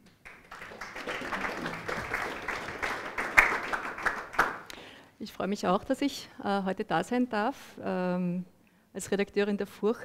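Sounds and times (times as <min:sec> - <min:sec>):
audience applauding: 0:00.2 - 0:04.7.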